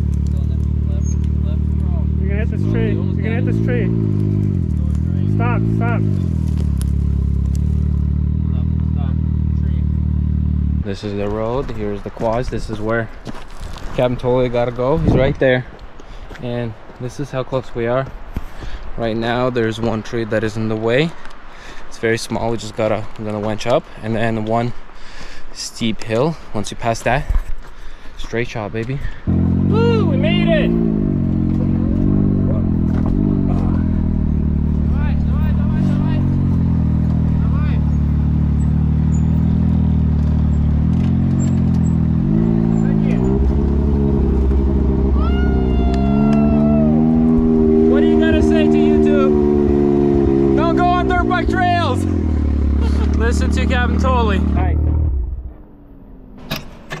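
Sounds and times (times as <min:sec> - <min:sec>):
utility vehicle engine running: 0:00.0 - 0:12.9, 0:29.2 - 0:57.0.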